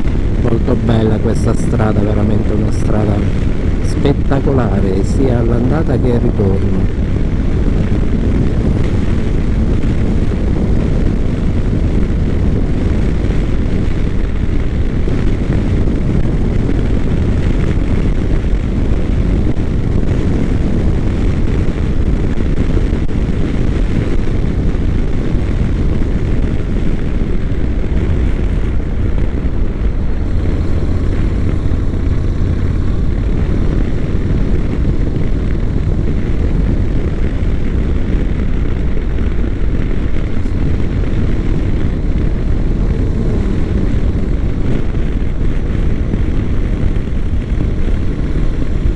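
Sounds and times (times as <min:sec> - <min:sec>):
motorcycle engine drone: 0:00.0 - 0:48.9
rushing wind: 0:00.0 - 0:48.9.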